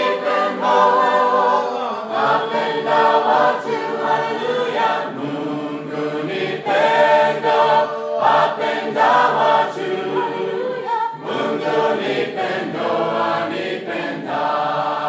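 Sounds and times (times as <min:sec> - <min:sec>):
group singing a cappella hymn: 0:00.0 - 0:15.0.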